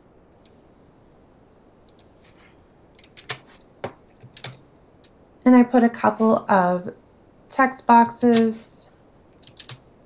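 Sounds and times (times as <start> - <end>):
low steady hiss: 0.0 - 10.0
computer mouse clicks: 1.9 - 4.6, 9.3 - 9.8.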